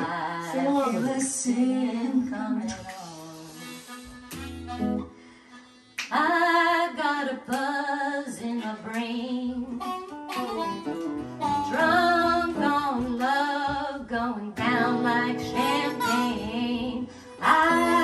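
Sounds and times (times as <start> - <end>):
woman singing: 0.0 - 3.5, 6.1 - 9.9, 11.6 - 18.0
instrumental accompaniment: 3.0 - 6.1, 9.7 - 18.0.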